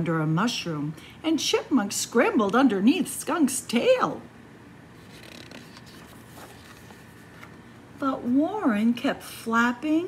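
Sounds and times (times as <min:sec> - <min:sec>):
book page turning: 0:05.0 - 0:07.7.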